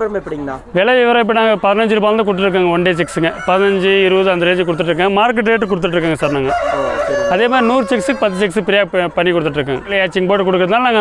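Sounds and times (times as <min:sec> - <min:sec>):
man talking: 0:00.0 - 0:11.0
rooster crowing: 0:03.0 - 0:04.9, 0:06.2 - 0:08.6.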